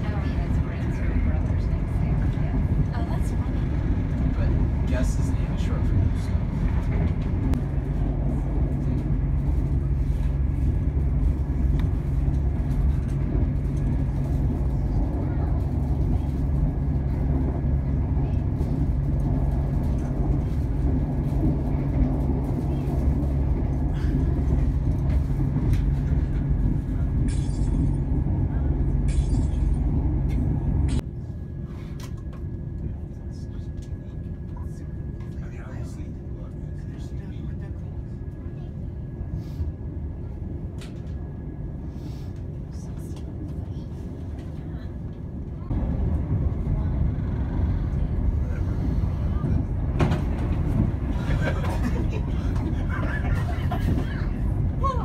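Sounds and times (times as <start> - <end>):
train cabin rumble: 0.0 - 55.0.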